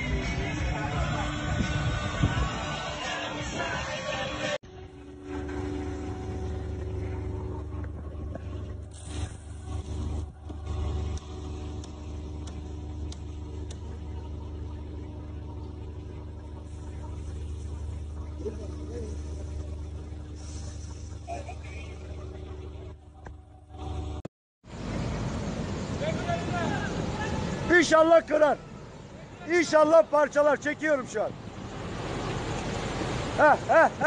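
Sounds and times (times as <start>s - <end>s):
boat engine rumbling: 0.0s - 34.0s
water noise: 0.0s - 34.0s
wind: 0.0s - 34.0s.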